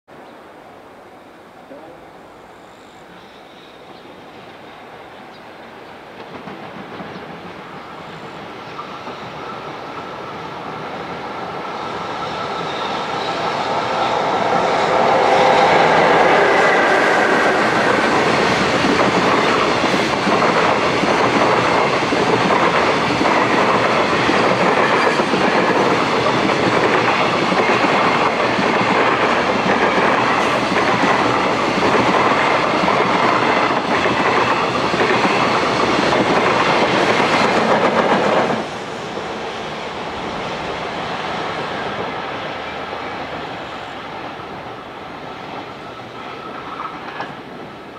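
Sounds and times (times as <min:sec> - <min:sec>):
electric locomotive passing: 0:00.2 - 0:47.9
train wagons rumbling: 0:05.6 - 0:43.4.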